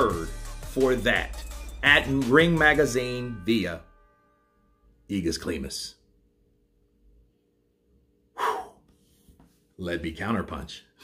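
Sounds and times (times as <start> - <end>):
man gasping breath: 8.4 - 9.3.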